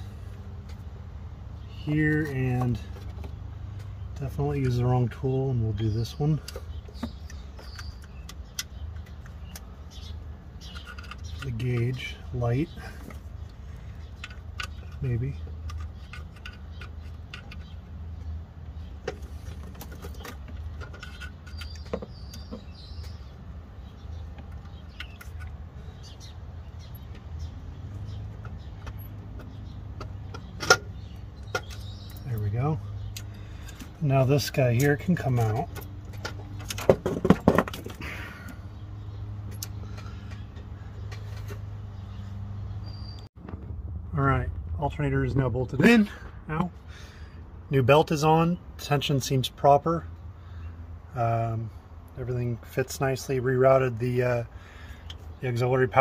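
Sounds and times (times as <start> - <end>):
steady low rumble: 43.4 - 47.8.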